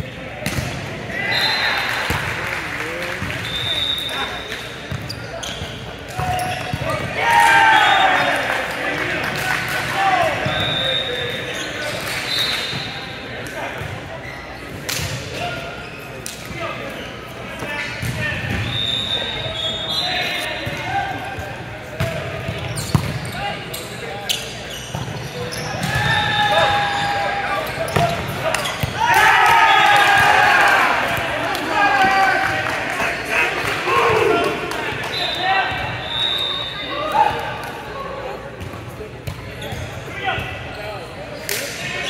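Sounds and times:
sneakers squeaking on court: 3.2 - 7.1, 16.9 - 26.2, 26.9 - 29.0, 38.5 - 41.4.

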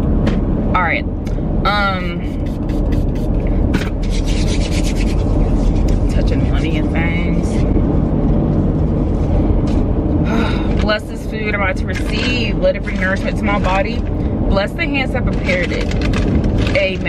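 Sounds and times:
low rumble inside a car: 0.0 - 17.0
close rubbing and rustling: 2.0 - 7.8, 10.8 - 14.1, 15.1 - 17.0.

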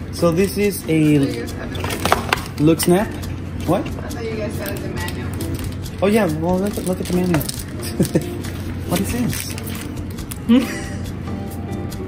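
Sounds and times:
packaging crinkling: 6.6 - 10.4.

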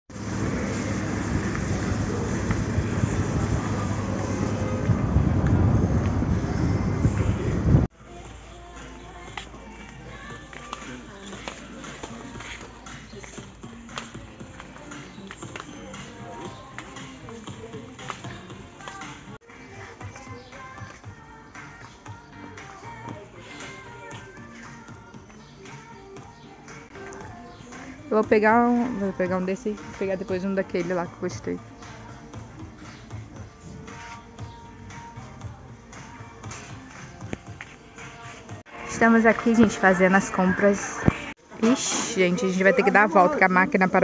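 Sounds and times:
music: 0.1 - 44.0.

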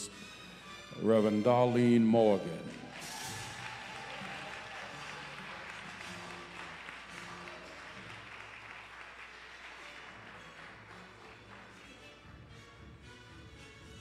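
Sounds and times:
faint music: 0.0 - 14.0
congregation applauding: 2.4 - 12.3.

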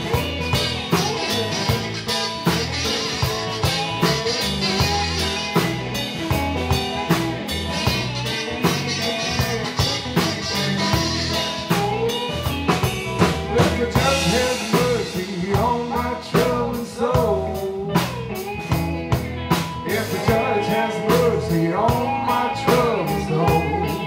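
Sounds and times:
harmonica notes bending: 0.0 - 16.8, 17.4 - 24.0
blues band playing: 0.0 - 24.0.

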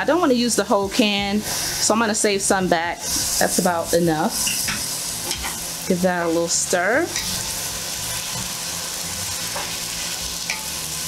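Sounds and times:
meat and beans sizzling in a pot: 0.0 - 11.0.

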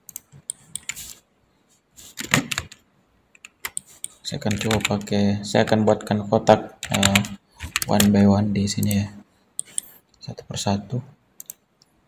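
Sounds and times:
computer keyboard keystrokes: 3.4 - 5.1, 6.8 - 8.1.

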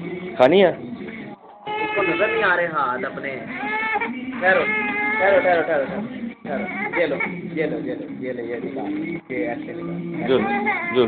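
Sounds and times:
young child wailing: 1.6 - 2.7.

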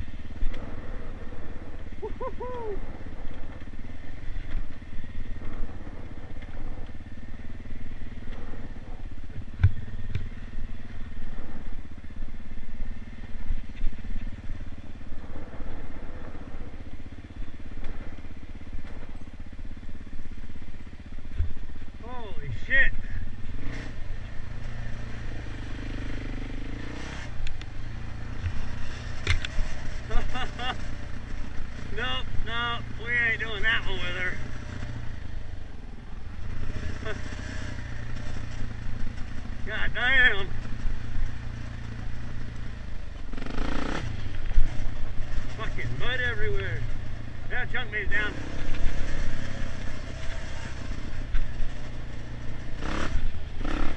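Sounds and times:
dirt bike engine running: 0.0 - 53.9.

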